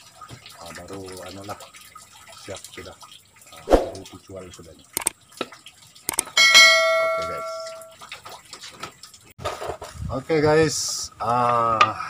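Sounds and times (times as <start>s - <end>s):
notification bell ding: 6.4s - 7.9s.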